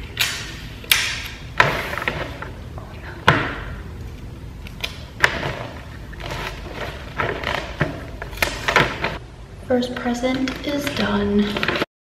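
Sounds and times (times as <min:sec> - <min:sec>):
sticky tape pulled from roll: 0:04.6 - 0:09.2.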